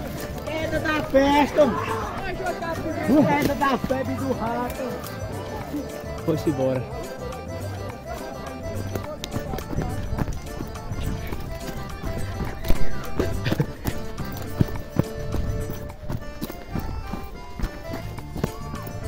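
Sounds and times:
horse hoofbeats galloping: 0.0 - 19.0.

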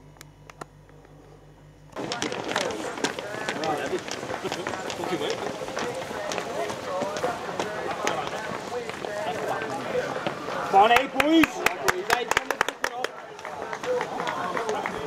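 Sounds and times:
men talking at once: 2.1 - 15.0.

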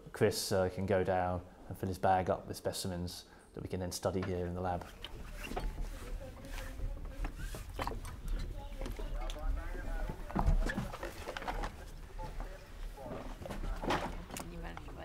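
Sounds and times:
people talking indistinctly: 0.2 - 15.0.

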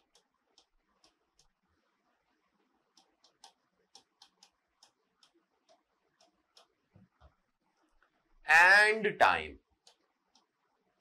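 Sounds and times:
writing tool ticking on board: 0.0 - 1.6, 2.9 - 6.8.

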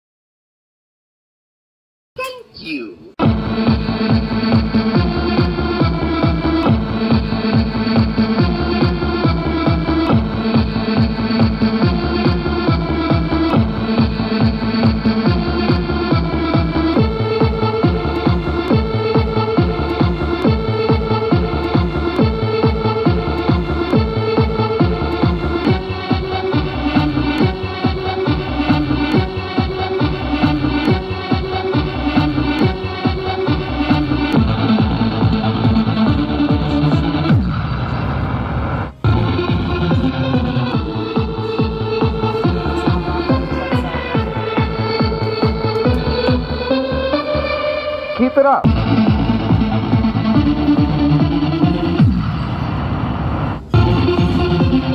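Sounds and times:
electronic game music with dance beat: 3.2 - 54.9
rising electronic sweep: 31.6 - 47.6, 48.7 - 54.9.

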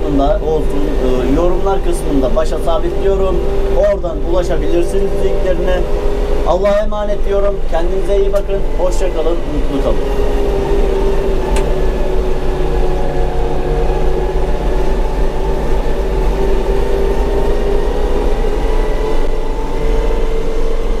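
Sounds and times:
steady whining tone: 0.0 - 21.0
tractor diesel engine running: 0.0 - 21.0.

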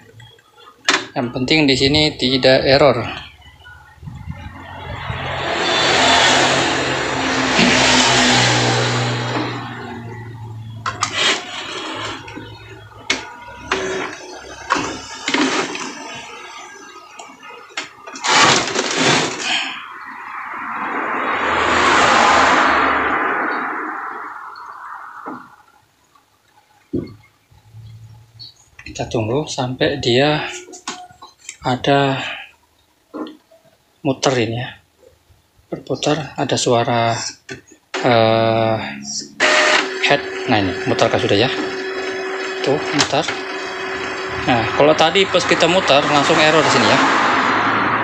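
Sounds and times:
printer motor whirring: 8.8 - 17.2, 39.4 - 46.6.

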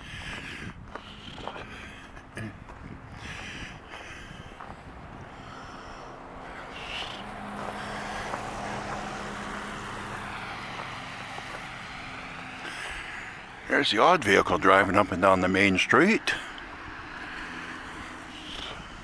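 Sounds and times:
vehicle driving on slushy street: 0.0 - 19.0.

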